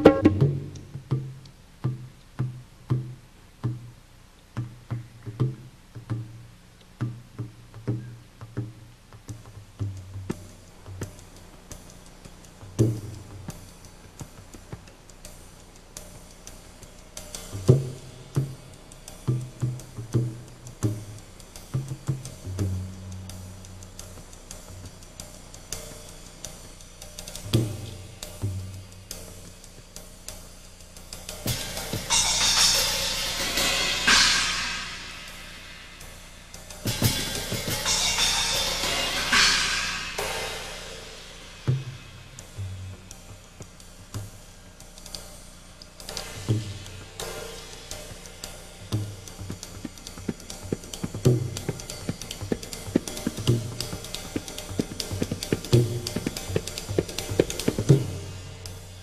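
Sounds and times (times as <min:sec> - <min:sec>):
drum strokes: 0:00.0 - 0:59.0
cymbal swells: 0:21.2 - 0:59.0.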